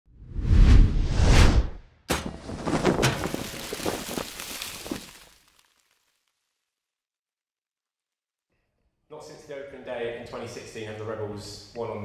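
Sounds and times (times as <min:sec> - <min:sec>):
smaller hits: 0:01.6 - 0:04.3
sudden impact: 0:01.6 - 0:05.1.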